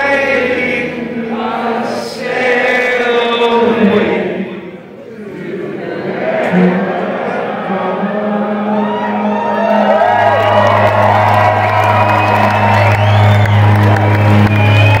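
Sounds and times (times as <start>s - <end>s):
crowd cheering and whooping: 8.4s - 15.0s.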